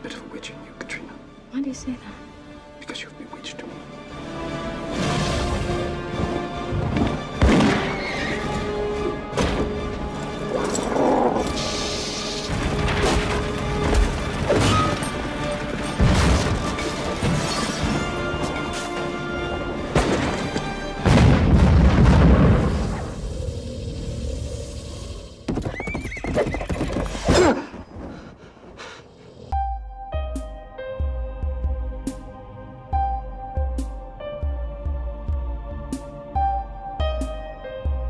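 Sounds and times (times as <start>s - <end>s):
film score music: 0.0s - 38.0s
horse whinnying: 7.8s - 8.5s, 25.5s - 27.6s
clatter of hooves: 25.5s - 27.4s.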